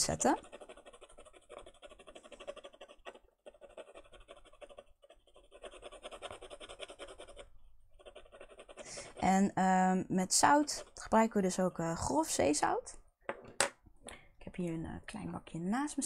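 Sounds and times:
pencil scratching on paper: 0:00.0 - 0:09.4, 0:10.2 - 0:11.3.

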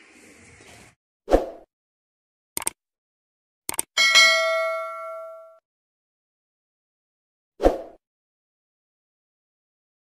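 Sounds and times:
quick clicks: 0:02.6 - 0:02.8, 0:03.7 - 0:03.9
bell-like notification ding: 0:04.0 - 0:05.6.

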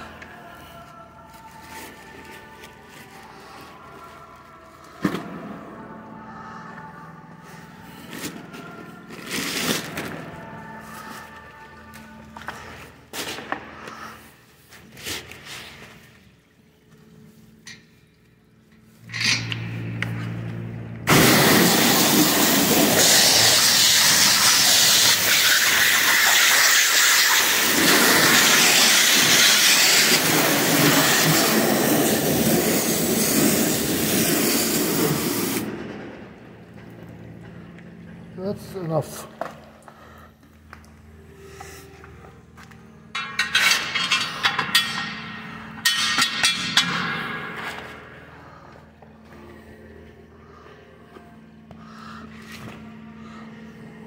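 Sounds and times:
low hum: 0:15.5 - 0:25.0, 0:27.8 - 0:54.0
high-pressure water spray hissing: 0:21.1 - 0:35.7.

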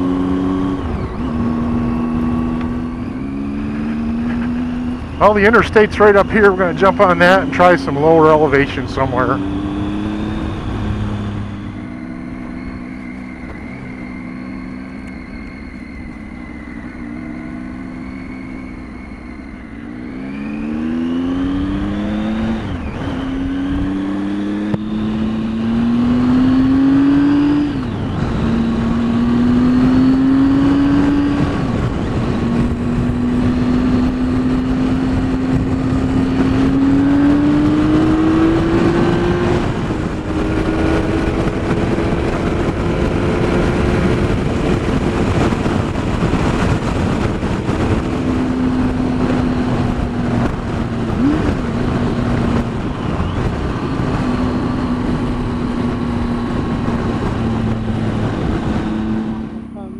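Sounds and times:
motorcycle engine accelerating: 0:00.0 - 0:59.9
wind noise on microphone: 0:00.0 - 0:59.9.

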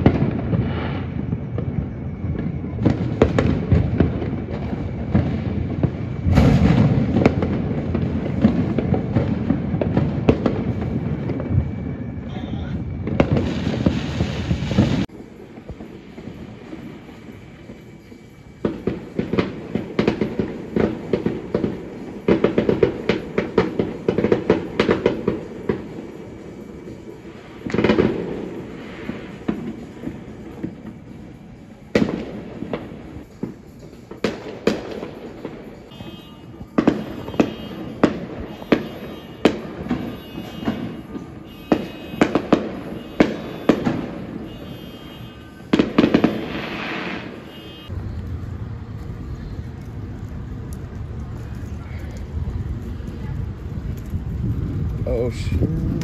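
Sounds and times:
fireworks crackling and banging: 0:00.0 - 0:56.0.

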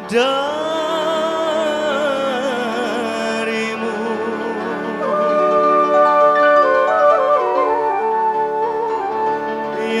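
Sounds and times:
keyboard accompaniment: 0:00.0 - 0:10.0
flute-like lead melody: 0:00.1 - 0:10.0.

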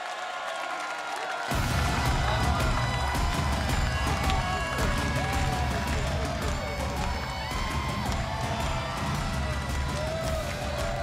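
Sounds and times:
music with heavy bass beat: 0:01.5 - 0:11.0.

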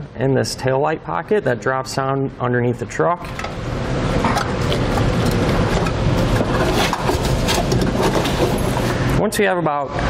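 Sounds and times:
wires rustling and scraping: 0:04.3 - 0:09.0.

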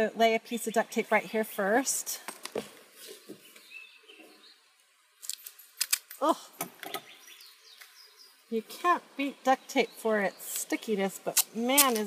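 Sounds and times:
duct tape ripping off roll: 0:05.2 - 0:06.2, 0:11.3 - 0:12.0.

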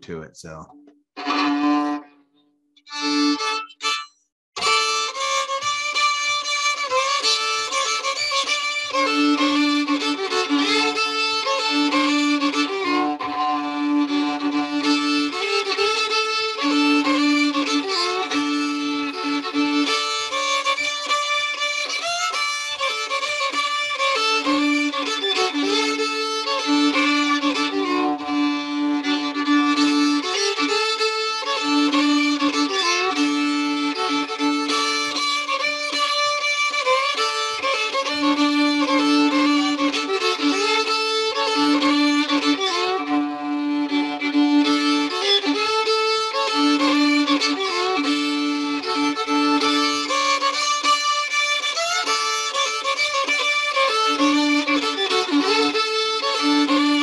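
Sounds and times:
solo fiddle tune with drone: 0:00.0 - 0:57.0.

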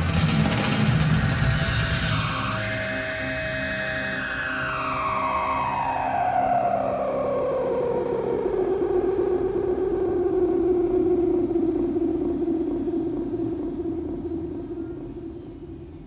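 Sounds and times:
electric guitar tone sliding down: 0:00.0 - 0:13.6.

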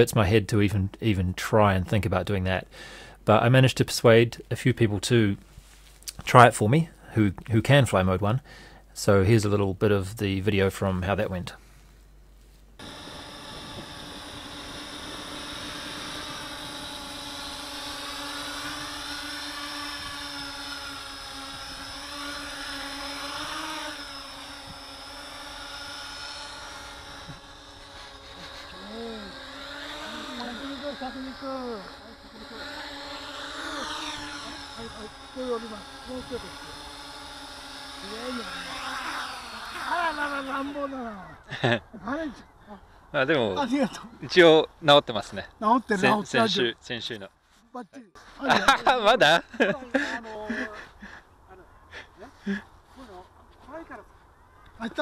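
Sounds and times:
quadcopter motors whining: 0:12.8 - 0:47.4, 0:48.0 - 0:55.0
people laughing and talking: 0:39.8 - 0:42.3, 0:48.3 - 0:52.7.

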